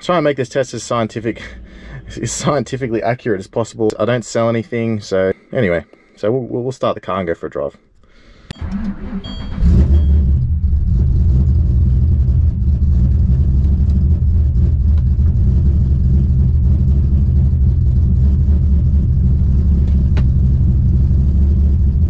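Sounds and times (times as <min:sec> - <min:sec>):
ignition click: 0:08.5 - 0:10.3
car engine cranking and idling: 0:08.5 - 0:22.0.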